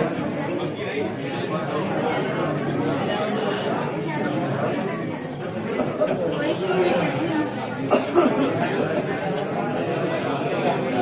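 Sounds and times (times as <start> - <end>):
chatter of many people: 0.0 - 11.0.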